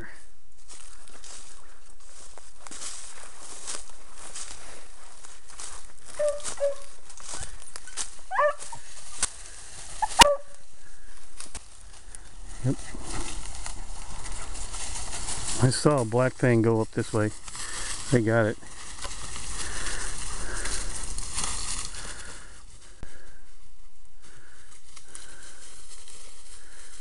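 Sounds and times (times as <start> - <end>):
footsteps through dry grass: 0.0 - 27.0
dog yelping: 6.2 - 6.9, 8.3 - 8.8, 10.0 - 10.5.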